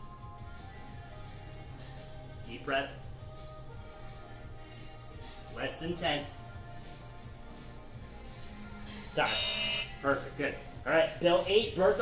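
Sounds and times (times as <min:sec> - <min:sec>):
quiet background music: 0:00.0 - 0:12.0
electronic timer buzzer: 0:09.2 - 0:10.0.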